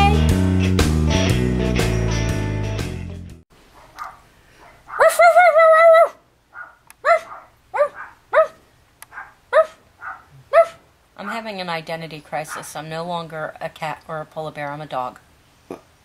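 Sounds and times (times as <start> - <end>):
woman barking like a dog: 4.8 - 8.6, 9.2 - 11.6, 12.5 - 12.8
woman howling like a dog: 5.0 - 6.2.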